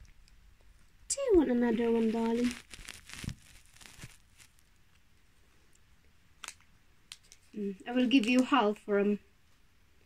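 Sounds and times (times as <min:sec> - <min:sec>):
plastic packet crinkling: 0:01.2 - 0:04.6, 0:06.4 - 0:08.7.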